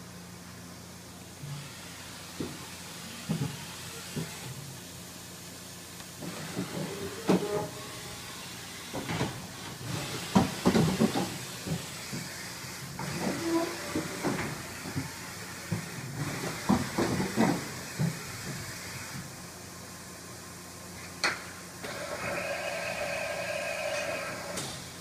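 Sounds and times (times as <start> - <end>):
machine whine: 21.8 - 24.8.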